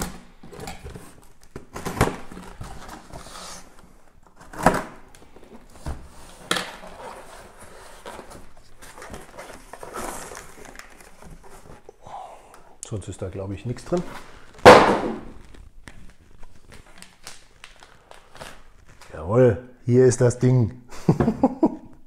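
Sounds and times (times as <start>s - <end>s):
cardboard rustling and scraping: 0.0s - 11.9s.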